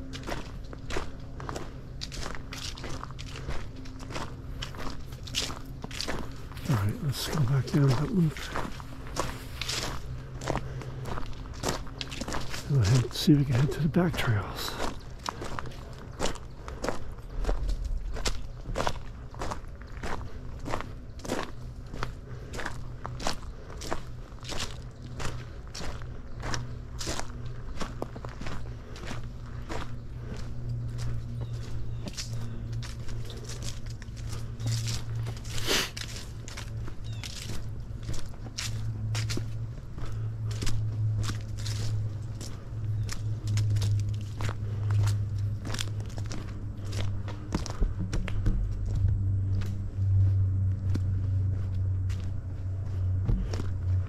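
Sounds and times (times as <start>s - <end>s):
footsteps on a trail: 0.0s - 54.0s.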